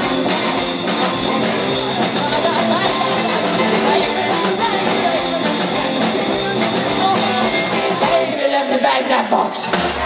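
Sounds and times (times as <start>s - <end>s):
woman singing: 0.0s - 9.5s
live rock band playing: 0.0s - 10.0s.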